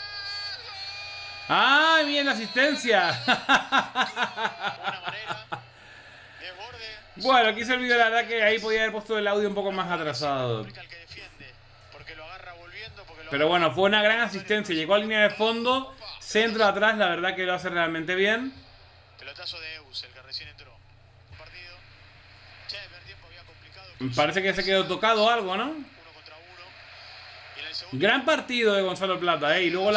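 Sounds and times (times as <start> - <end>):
man laughing: 3.0 - 5.6.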